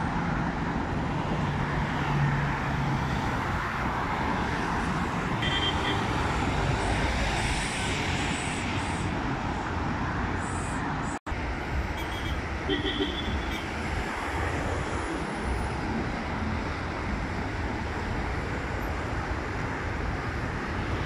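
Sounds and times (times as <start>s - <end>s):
highway traffic: 0.0s - 21.0s.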